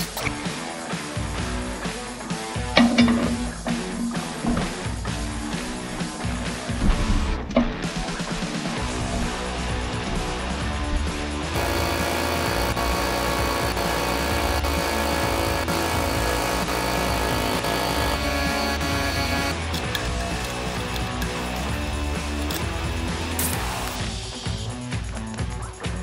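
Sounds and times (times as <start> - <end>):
rock music with electric guitar: 0.0 - 26.0.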